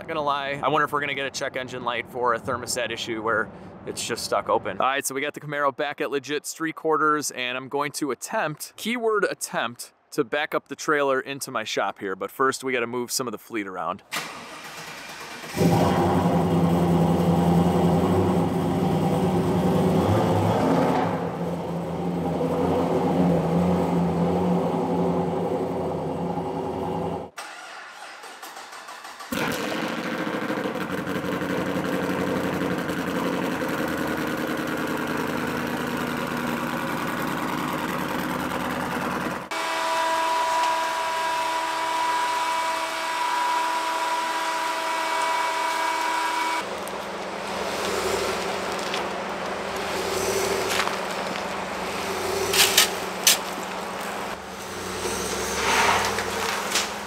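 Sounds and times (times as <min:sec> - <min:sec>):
car engine starting and idling: 0:14.1 - 0:39.7, 0:40.6 - 0:57.0
engine hum with high whine: 0:14.2 - 0:27.4, 0:29.0 - 0:57.0
second car engine running: 0:14.3 - 0:27.5, 0:28.6 - 0:57.0.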